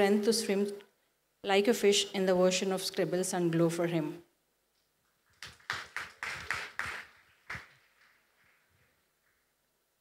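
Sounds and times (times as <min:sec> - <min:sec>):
people clapping: 0:05.3 - 0:09.4.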